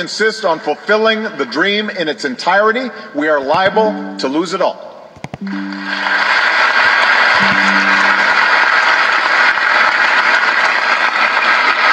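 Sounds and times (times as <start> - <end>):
low musical notes: 3.6 - 9.2
large audience applauding: 5.5 - 11.9.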